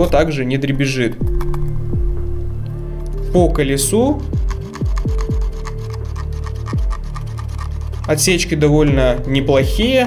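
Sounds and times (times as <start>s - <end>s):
electronic music with deep bass: 1.2s - 10.0s
mouse scroll wheel ticking: 4.4s - 8.3s.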